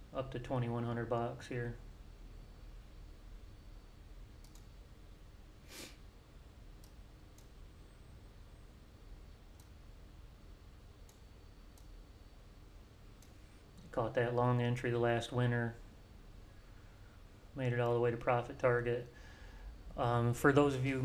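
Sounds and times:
computer mouse clicks: 0:04.4 - 0:04.8, 0:06.8 - 0:07.6, 0:09.5 - 0:09.8, 0:11.0 - 0:12.0.

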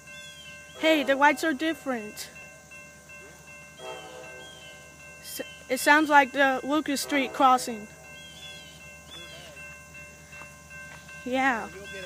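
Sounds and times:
crossing warning bell ringing: 0:00.0 - 0:12.0
faint train horn: 0:03.2 - 0:04.7, 0:06.0 - 0:09.6.

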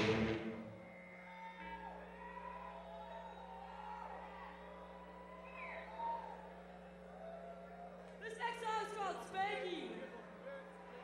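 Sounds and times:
electrical hum from amplifiers: 0:00.0 - 0:11.0.

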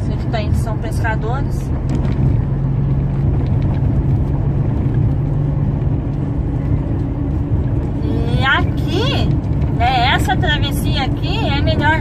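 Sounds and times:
diesel engine low hum: 0:00.0 - 0:12.0
tyre and road rumble: 0:00.0 - 0:12.0.

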